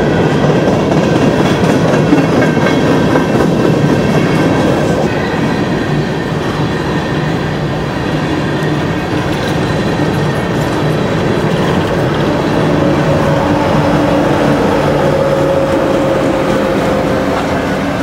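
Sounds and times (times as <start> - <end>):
train wheels clattering over rails: 0.0 - 18.0.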